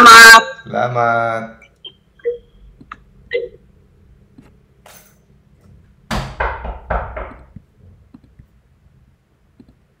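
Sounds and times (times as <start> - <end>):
loud knocks and thumps: 6.1 - 7.7.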